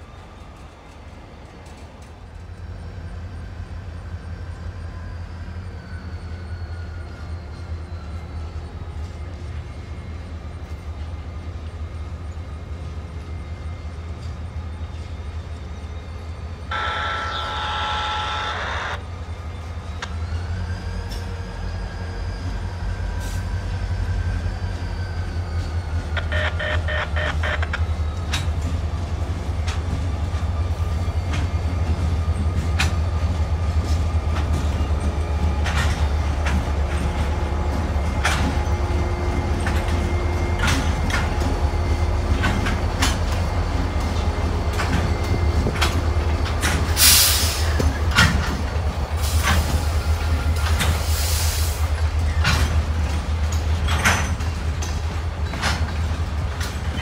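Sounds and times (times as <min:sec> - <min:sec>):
diesel locomotive engine rumble: 0:00.0 - 0:57.0
steady high tone: 0:16.7 - 0:19.0, 0:26.2 - 0:27.8.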